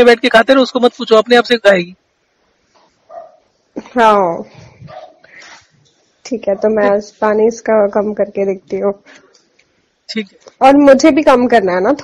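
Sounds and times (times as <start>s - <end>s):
person speaking on phone: 6.3s - 8.9s.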